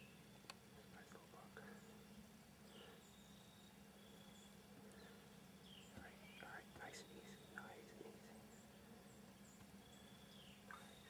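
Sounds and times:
steady low hum: 0.0s - 11.0s
faint whispering: 0.8s - 2.1s, 5.9s - 8.5s.

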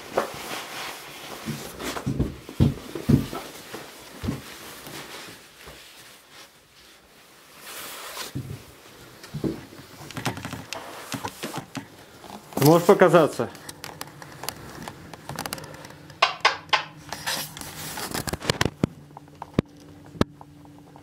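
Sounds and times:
rustling: 0.0s - 16.1s, 17.0s - 19.3s
knocks and thumps: 1.4s - 3.5s.

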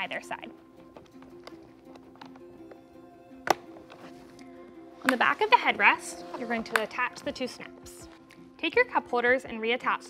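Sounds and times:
soft background music: 0.0s - 10.0s
fabric snaps clicking shut: 3.4s - 4.0s.

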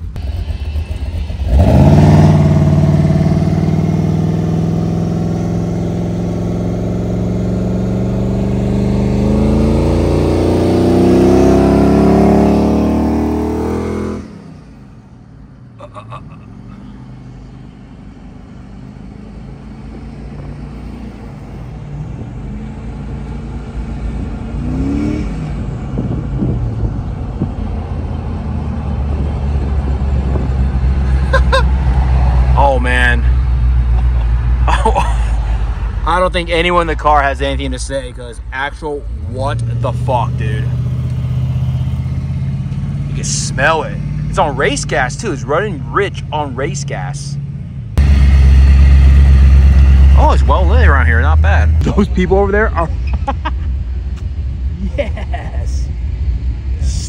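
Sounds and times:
loud car engine accelerating: 0.0s - 15.1s, 16.7s - 57.0s
engine and road noise inside car: 0.0s - 57.0s.

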